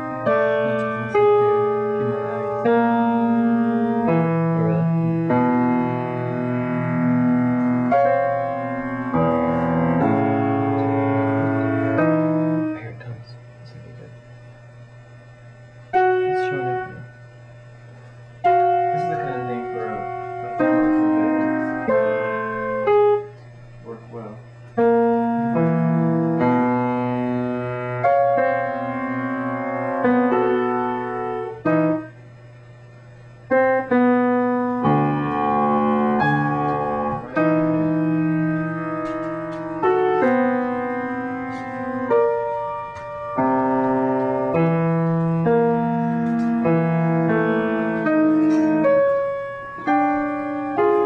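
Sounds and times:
piano playing slow notes: 0.0s - 51.0s.

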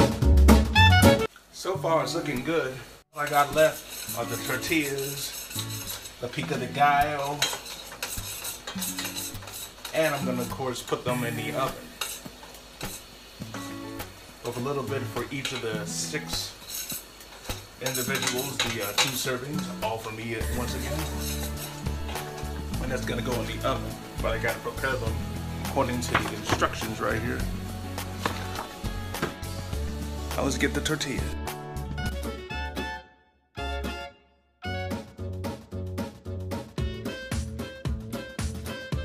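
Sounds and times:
background music with bass and beat: 0.0s - 1.3s, 20.4s - 33.0s, 33.6s - 39.0s
utensil stirring meat in frying pan: 3.2s - 30.5s.

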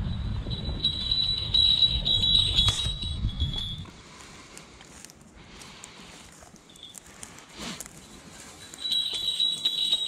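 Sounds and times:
high ringing bell: 0.0s - 3.9s, 8.1s - 10.0s
wind rumble on microphone: 0.0s - 4.2s.

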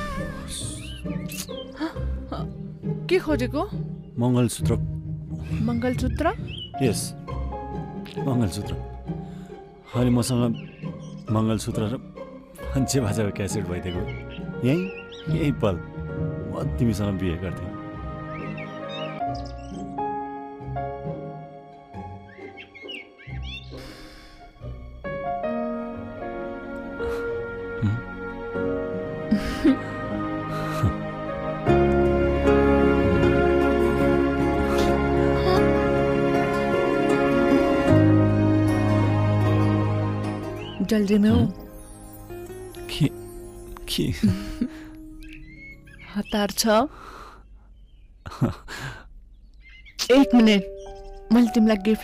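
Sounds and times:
film background score: 0.0s - 52.0s.

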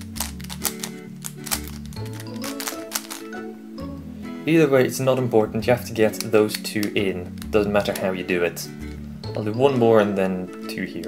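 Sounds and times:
plastic puzzle clicking: 0.0s - 3.4s, 6.0s - 8.2s
background music: 0.0s - 11.0s.

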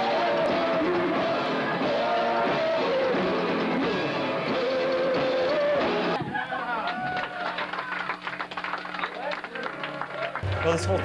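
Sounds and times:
indistinct crowd voices: 0.0s - 6.9s, 9.8s - 11.0s
sharp taps and claps: 7.6s - 11.0s.

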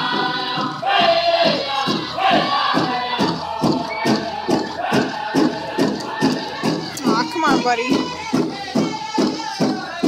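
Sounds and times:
large hand drum beat: 0.0s - 10.0s
singers' voices: 0.0s - 10.0s.

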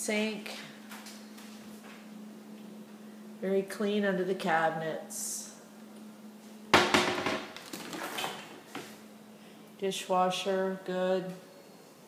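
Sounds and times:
cabinet door knocking shut: 6.7s - 7.5s.

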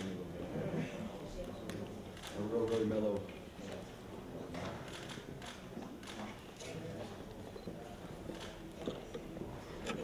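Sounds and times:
faint background murmur: 0.0s - 10.0s.

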